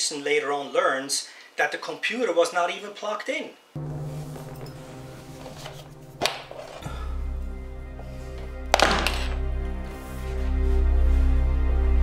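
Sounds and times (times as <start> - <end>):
low steady drone: 3.8 - 12.0
sustained music tones: 3.8 - 12.0.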